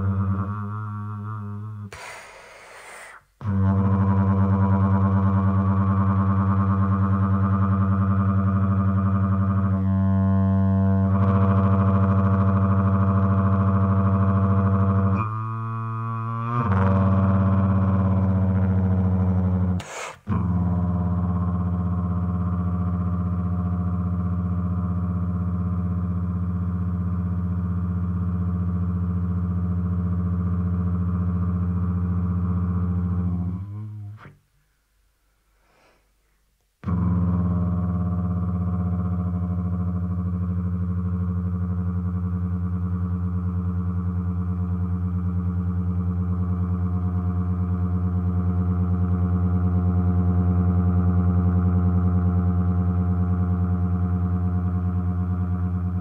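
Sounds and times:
loud low drone: 0.0 - 2.1, 3.4 - 34.3, 36.8 - 56.0.

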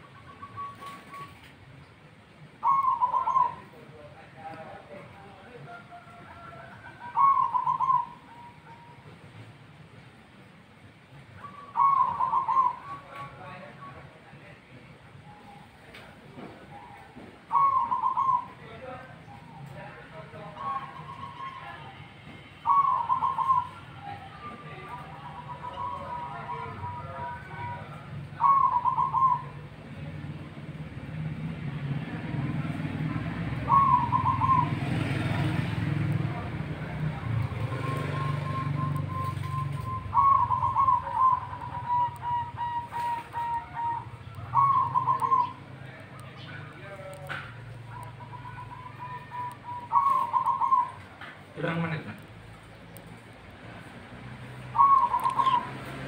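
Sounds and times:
dove cooing: 2.6 - 4.0, 4.8 - 9.0, 11.4 - 13.4, 16.3 - 19.8, 22.6 - 30.1, 32.6 - 52.0, 54.7 - 56.0.

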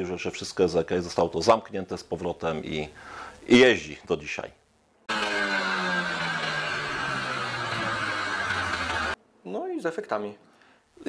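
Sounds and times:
car engine running: 5.6 - 9.2.

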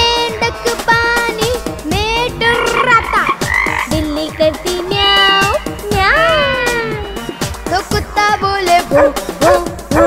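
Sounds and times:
upbeat children's song music: 0.0 - 10.0
cartoon frog croaking: 1.9 - 7.4
gliding animal calls: 2.2 - 7.4.

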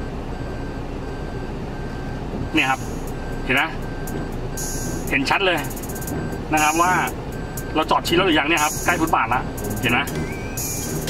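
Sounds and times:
parking warning beeps: 0.0 - 11.0
steady low rumble: 0.0 - 11.0.

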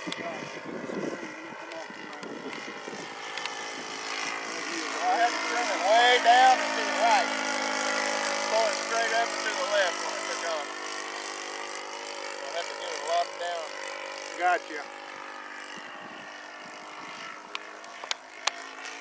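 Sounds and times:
model airplane engine running: 0.0 - 19.0.

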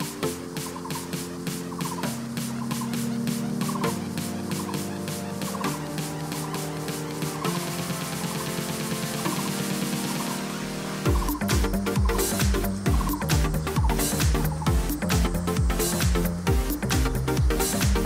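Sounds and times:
background music with quick beat: 0.0 - 18.0.

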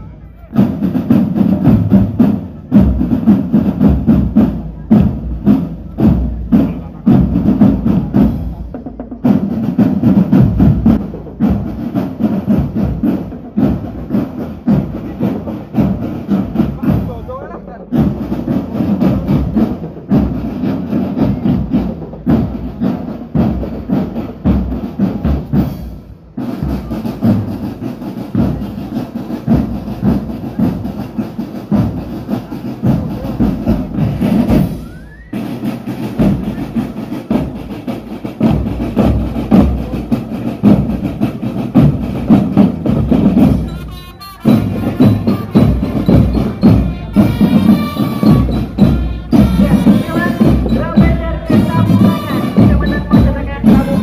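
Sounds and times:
bass drums: 0.0 - 17.4, 18.0 - 54.0
snare drums: 0.4 - 54.0.

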